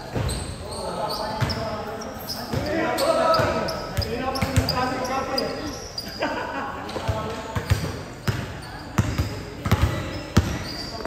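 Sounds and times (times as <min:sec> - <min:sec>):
players' voices: 0:00.0 - 0:11.0
basketball bouncing on hard court: 0:07.0 - 0:11.0.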